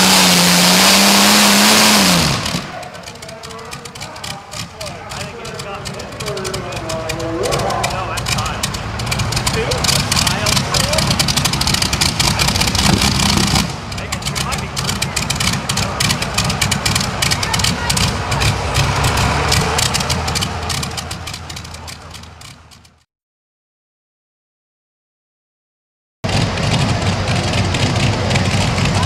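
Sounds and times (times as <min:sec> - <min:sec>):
tractor engine running rough: 0:00.0 - 0:23.0, 0:26.2 - 0:29.0.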